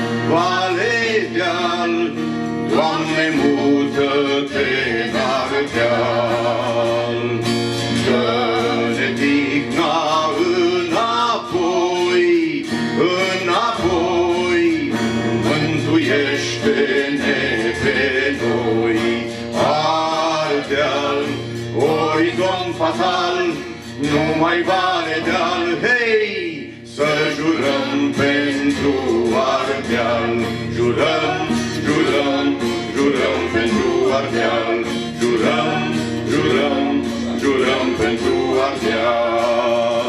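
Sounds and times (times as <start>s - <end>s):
person singing: 0.0s - 40.0s
strummed acoustic guitars: 0.0s - 40.0s.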